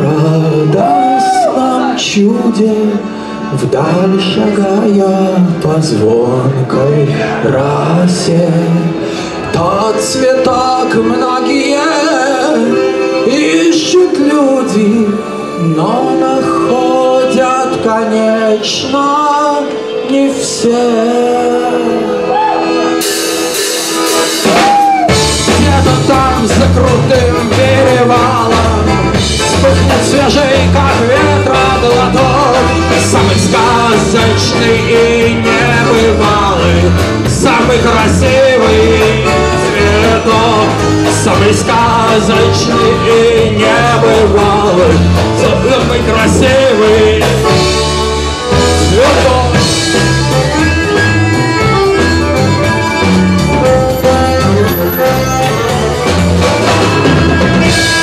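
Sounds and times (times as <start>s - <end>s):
drums and bass: 0.0s - 2.9s, 20.6s - 58.0s
accordion chords: 0.0s - 58.0s.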